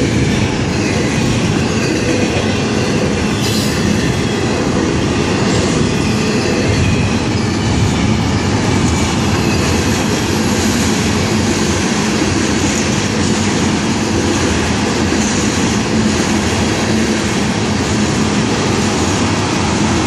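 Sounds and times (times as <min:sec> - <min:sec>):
freight train wheels on rails: 0:00.0 - 0:20.0.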